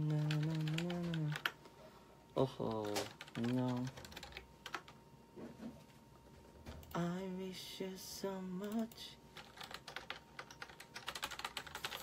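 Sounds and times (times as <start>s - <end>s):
person humming: 0.0s - 1.5s
rapid typing on keyboard: 0.0s - 1.6s, 2.7s - 5.0s, 9.4s - 12.0s.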